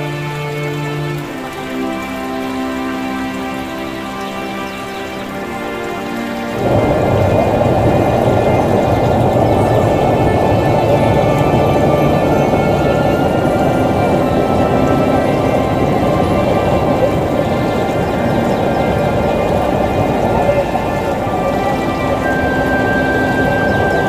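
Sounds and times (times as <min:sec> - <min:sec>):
fast water rushing over rock: 0:00.0 - 0:24.0
music with sustained notes: 0:00.0 - 0:24.0.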